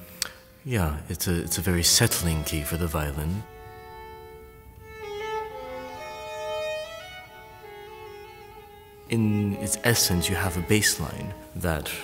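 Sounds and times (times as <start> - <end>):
solo violin playing slow notes: 0.4 - 12.0.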